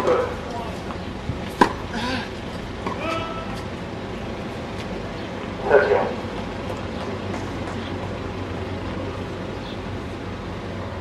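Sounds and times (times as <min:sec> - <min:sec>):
background murmur: 0:00.0 - 0:10.7
tennis ball struck by racket: 0:01.5 - 0:01.8.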